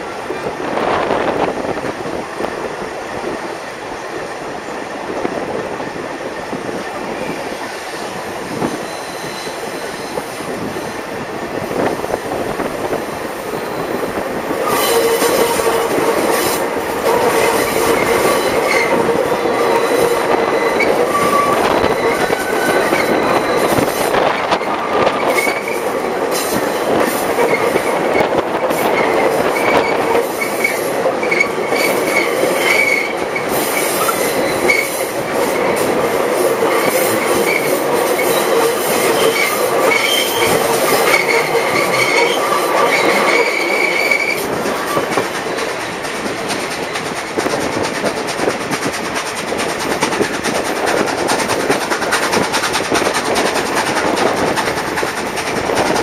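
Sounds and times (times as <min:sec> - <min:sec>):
train wheels rumbling on rails: 0:00.0 - 0:56.0
wheel squeal: 0:08.6 - 0:11.0, 0:13.5 - 0:25.9, 0:28.9 - 0:35.7, 0:36.8 - 0:45.6.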